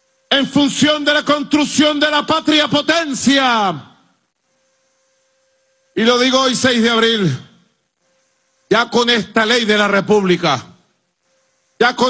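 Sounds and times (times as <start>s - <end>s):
faint steady hum: 0.0s - 12.0s
man speaking: 0.3s - 4.0s, 6.0s - 7.6s, 8.7s - 10.8s, 11.8s - 12.0s.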